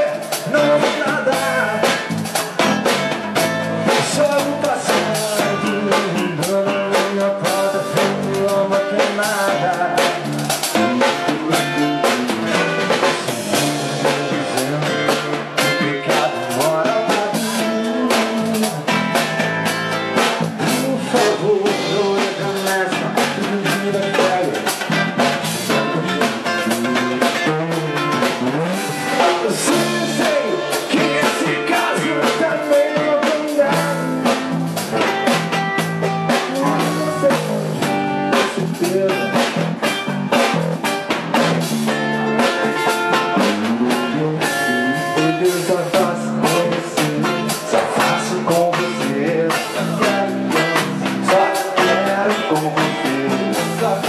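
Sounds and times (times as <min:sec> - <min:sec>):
man singing: 0:00.0 - 0:03.0, 0:03.8 - 0:19.5, 0:20.2 - 0:35.2, 0:36.3 - 0:40.6, 0:41.9 - 0:54.0
live rock band playing: 0:00.0 - 0:54.0.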